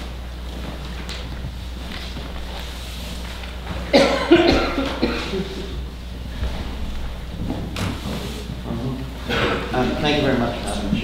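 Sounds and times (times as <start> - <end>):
low room hum: 0.0 - 11.0
person coughing: 3.9 - 5.8.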